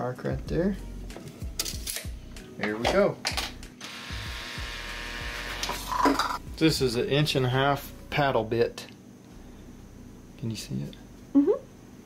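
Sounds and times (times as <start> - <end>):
cordless drill motor running: 3.8 - 5.9.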